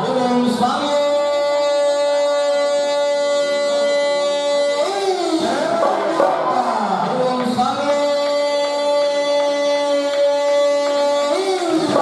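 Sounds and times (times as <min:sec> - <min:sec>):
man singing long note: 0:00.0 - 0:12.0.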